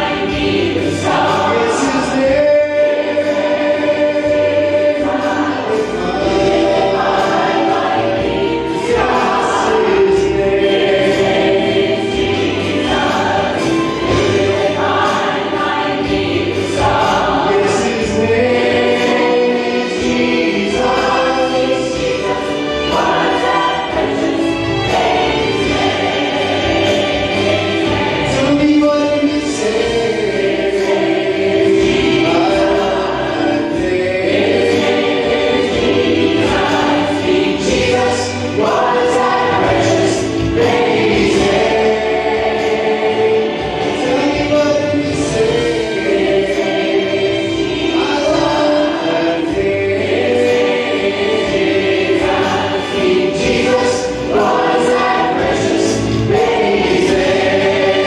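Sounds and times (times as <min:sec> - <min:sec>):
choir singing gospel song: 0:00.0 - 0:58.0.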